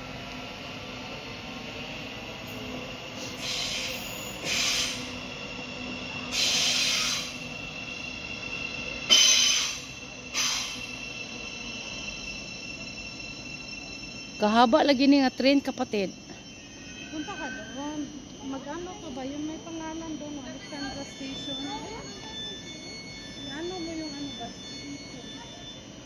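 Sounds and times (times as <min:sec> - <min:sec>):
electric train running: 0:00.0 - 0:26.0
wheels squealing on rails: 0:00.0 - 0:26.0
brief wheel screeches: 0:03.2 - 0:05.2, 0:06.3 - 0:07.6, 0:08.6 - 0:14.4.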